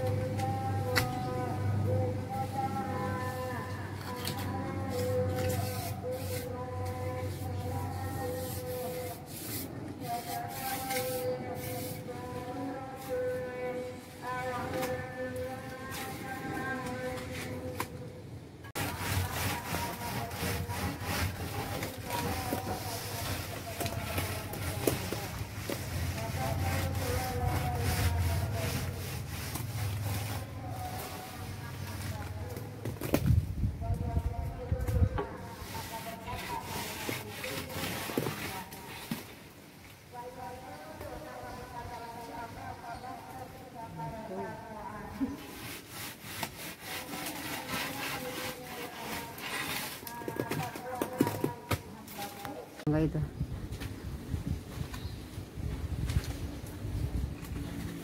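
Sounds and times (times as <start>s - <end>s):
straightedge rasping over cement: 18.8s - 23.2s, 45.8s - 50.1s
board scraping over cement render: 18.8s - 30.5s.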